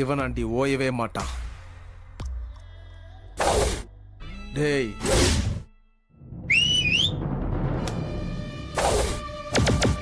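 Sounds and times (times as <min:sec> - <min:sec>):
background music: 0:00.0 - 0:10.0
sliding whistle: 0:06.5 - 0:07.2.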